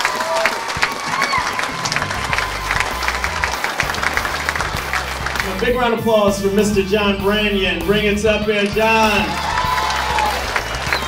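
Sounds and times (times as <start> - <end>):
audience clapping: 0.0 - 6.7, 8.1 - 11.0
audience cheering: 0.0 - 7.4, 8.0 - 11.0.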